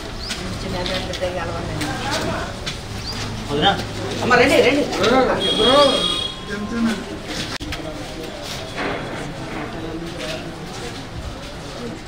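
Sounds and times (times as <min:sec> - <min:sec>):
indistinct background voices: 0:00.0 - 0:12.0
steady outdoor noise: 0:00.0 - 0:12.0.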